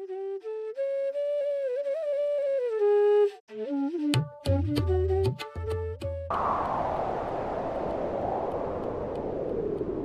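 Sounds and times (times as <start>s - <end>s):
flute-like melody: 0.0s - 6.3s.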